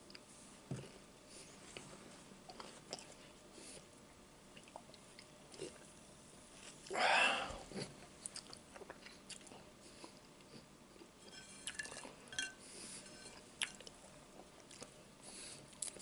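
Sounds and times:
man chewing crispy bacon: 7.8s - 11.0s, 13.6s - 16.0s.

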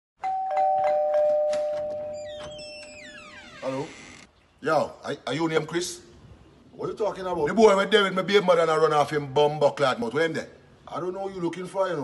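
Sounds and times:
two-note doorbell chime: 0.2s - 2.4s.

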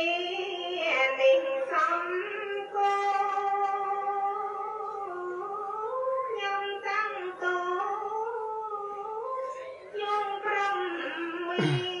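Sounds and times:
person singing long held notes: 8.0s - 12.0s.

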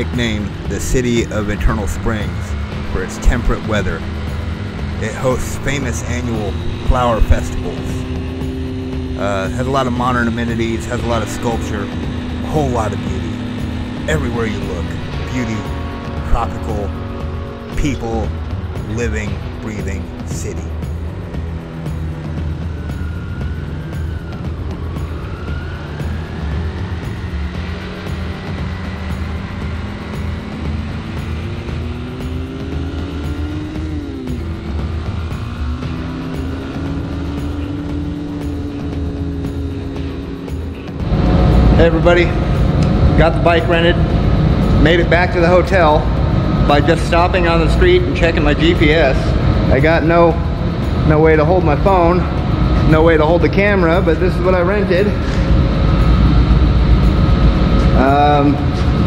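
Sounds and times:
machinery low rumble: 0.0s - 59.0s
motorcycle engine revving: 0.0s - 59.0s.

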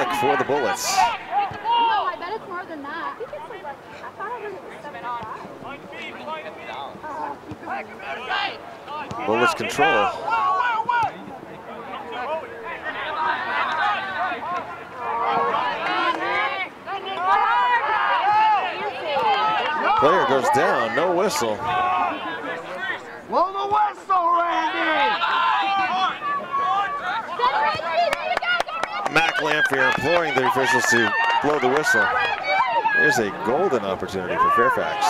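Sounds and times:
people talking and calling out: 0.0s - 35.0s.

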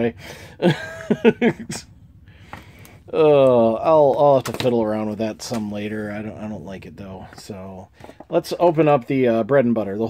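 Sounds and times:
man laughing: 0.4s - 1.9s.

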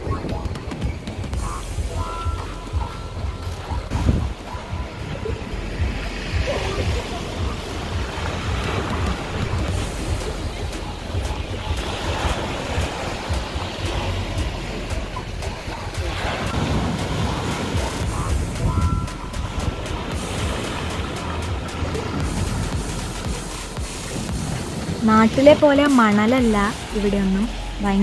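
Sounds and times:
music: 0.0s - 28.0s
wind rumbling on microphone: 0.0s - 28.0s
waves washing over rocks and pebbles: 0.1s - 28.0s.

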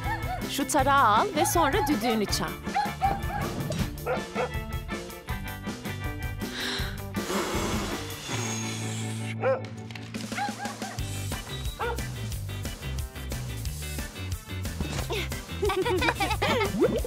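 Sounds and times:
upbeat cartoon music: 0.0s - 17.0s
cartoon dogs barking: 1.2s - 4.6s, 9.4s - 9.7s, 10.3s - 11.1s, 11.8s - 12.1s.

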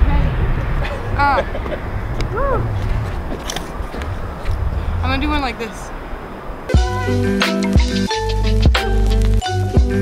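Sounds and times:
low outdoor rumble: 0.0s - 7.3s.

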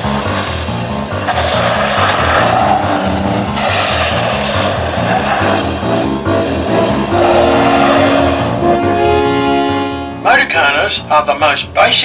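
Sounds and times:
car engine and tyres sliding: 0.0s - 8.9s
orchestral music: 0.0s - 11.1s.

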